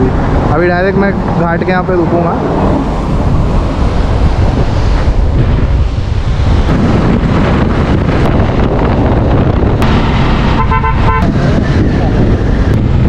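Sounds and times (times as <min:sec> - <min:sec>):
wind noise on microphone: 0:00.0 - 0:13.0
vehicle horn blasts: 0:10.4 - 0:11.4.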